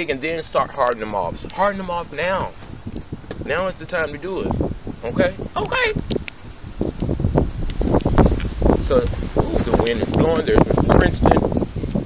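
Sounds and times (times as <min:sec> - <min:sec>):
man speaking: 0:00.0 - 0:02.6, 0:03.4 - 0:06.0, 0:08.8 - 0:11.5
wind buffeting microphone: 0:00.0 - 0:12.0.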